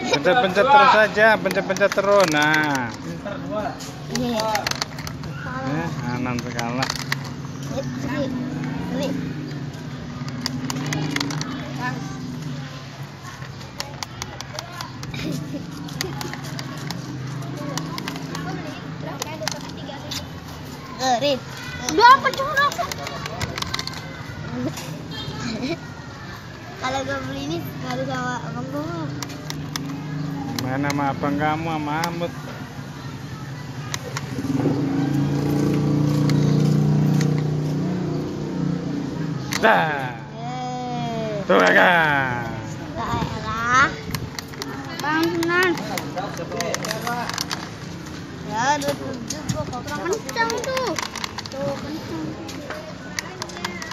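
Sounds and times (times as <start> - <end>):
vehicle engine humming: 0.0 - 53.9
voices talking: 0.0 - 53.9
plastic toy clicks and knocks: 0.9 - 3.3, 4.0 - 12.6, 13.3 - 20.5, 21.2 - 25.2, 27.0 - 28.2, 28.8 - 32.4, 33.8 - 37.6, 39.4 - 39.7, 43.2 - 53.9
plastic toy button clicks: 1.2 - 3.0, 10.2 - 11.6, 17.7 - 18.5, 39.5 - 39.7, 44.1 - 47.7, 53.1 - 53.9.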